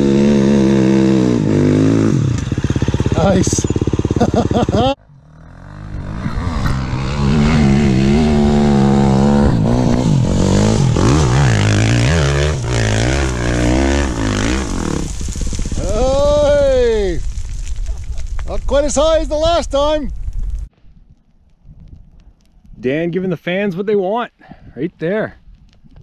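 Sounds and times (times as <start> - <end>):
dirt bike engine revving: 0.0 - 16.7.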